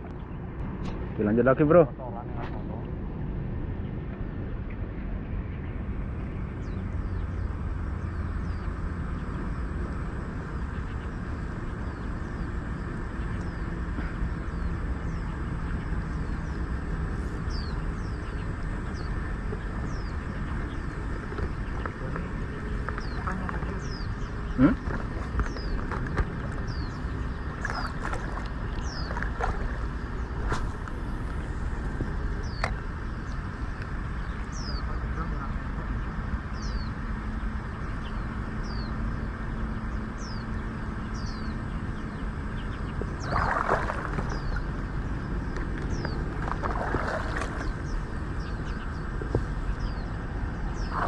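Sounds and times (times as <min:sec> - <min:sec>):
low wind rumble on microphone: 0:00.0 - 0:51.0
bird chirping: 0:10.5 - 0:37.0, 0:37.7 - 0:51.0.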